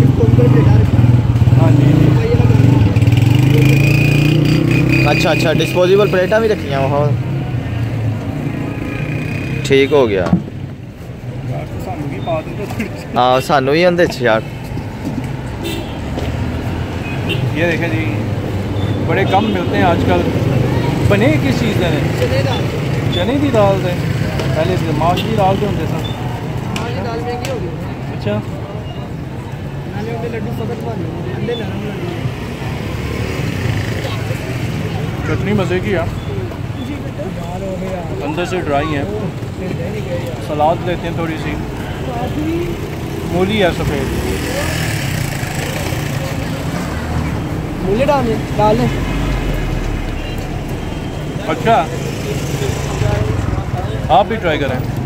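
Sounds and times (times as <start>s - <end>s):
faint voices of passers-by: 0.0s - 55.0s
street background noise: 0.0s - 55.0s
vehicle engines running: 0.0s - 55.0s.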